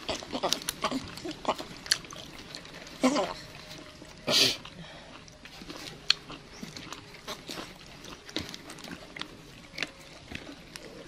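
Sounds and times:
monkey chewing: 0.0s - 11.0s.

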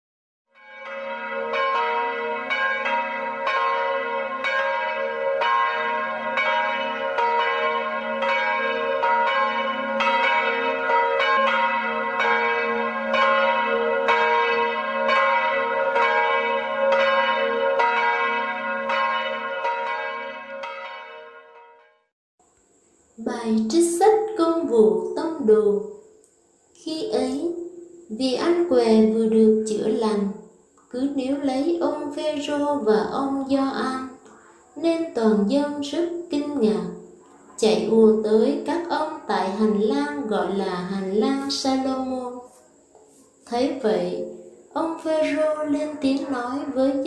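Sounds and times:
church bells ringing: 0.6s - 22.0s, 44.8s - 47.0s.

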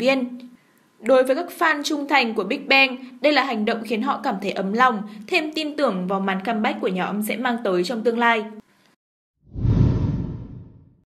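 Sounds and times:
whoosh: 9.5s - 11.0s.

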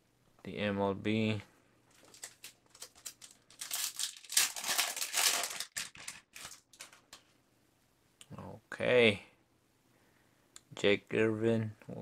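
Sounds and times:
foil wrapper crinkling and tearing: 2.0s - 7.2s.

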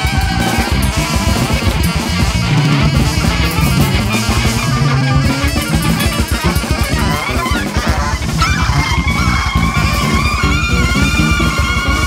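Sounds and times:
fast dense drums and bass: 0.0s - 12.0s.

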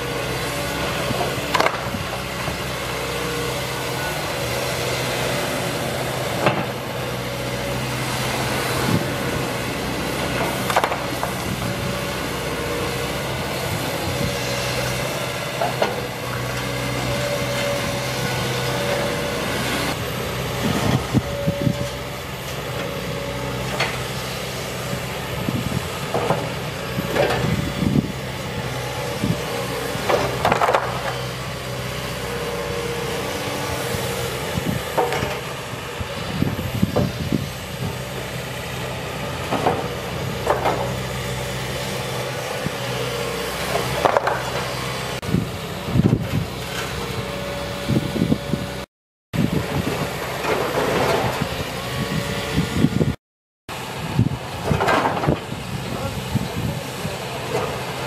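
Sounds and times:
excavator diesel engine running: 0.0s - 58.0s.

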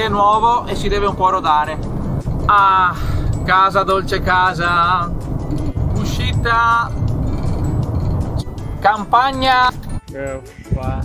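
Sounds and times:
music: 0.0s - 11.0s
road and engine rumble: 0.0s - 11.0s.

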